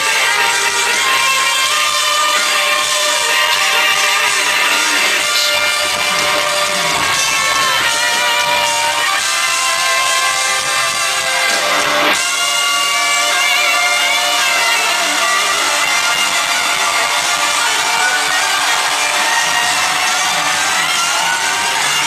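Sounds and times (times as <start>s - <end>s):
electric guitar bending notes: 0.0s - 22.0s.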